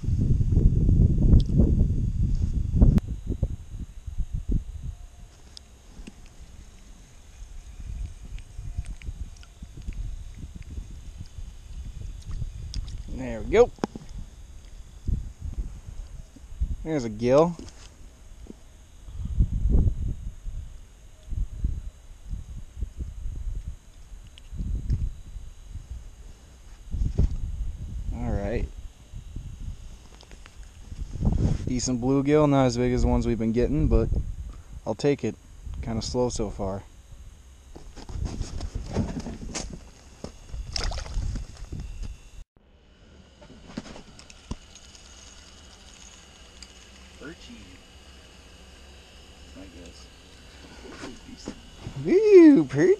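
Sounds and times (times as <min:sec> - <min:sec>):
wind buffeting microphone: 0:00.0 - 0:04.9, 0:07.2 - 0:17.0, 0:19.0 - 0:42.4
faint high whine: 0:00.0 - 0:52.9
steady hiss: 0:42.8 - 0:52.9.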